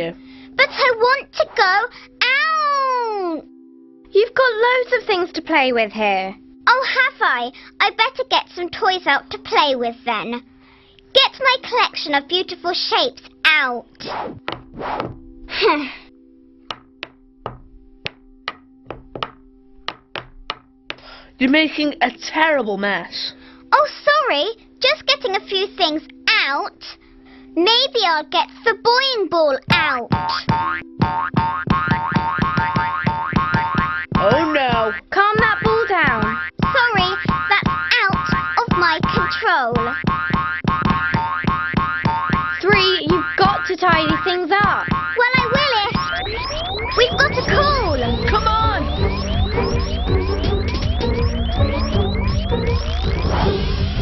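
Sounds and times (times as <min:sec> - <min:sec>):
quiet held chord music: 0:00.0 - 0:14.0, 0:14.7 - 0:31.7, 0:32.9 - 0:53.0
cartoon toys knocking on floor: 0:14.5 - 0:15.2, 0:16.7 - 0:21.0, 0:30.1 - 0:46.6.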